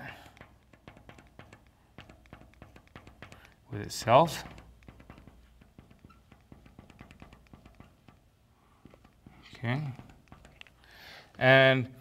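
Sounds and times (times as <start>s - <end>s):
marker tapping on board: 0.0s - 11.1s.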